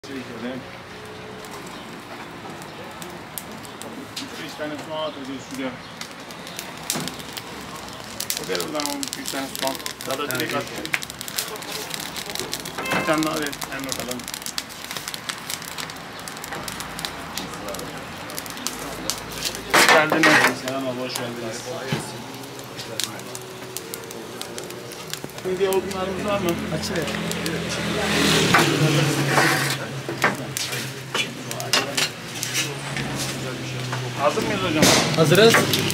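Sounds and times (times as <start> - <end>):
wood fire crackling and popping: 0.0 - 35.9.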